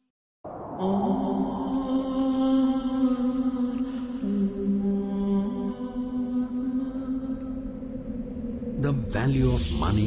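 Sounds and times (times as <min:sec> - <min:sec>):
chant-like wordless vocal music: 0:00.4 - 0:10.0.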